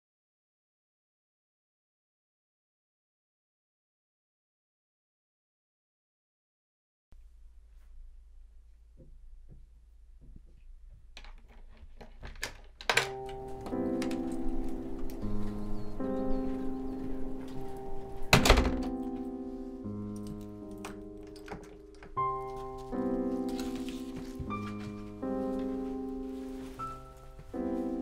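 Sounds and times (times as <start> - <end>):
slow music of held chords: 12.9 - 28.0
wooden door thunking shut: 18.2 - 19.1.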